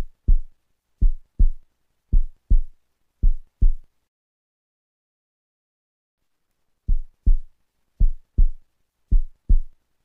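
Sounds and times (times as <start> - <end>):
heartbeat thumps: 0.0 - 3.9, 6.9 - 9.8.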